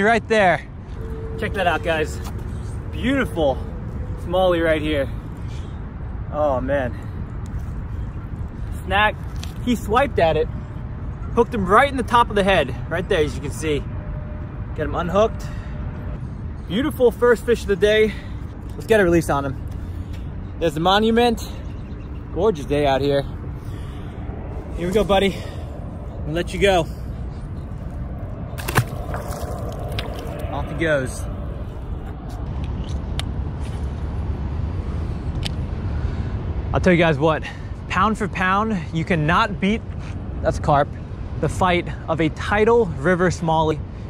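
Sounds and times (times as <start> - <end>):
outdoor background rumble: 0.0 - 44.0
fish splashing into water: 28.6 - 30.4.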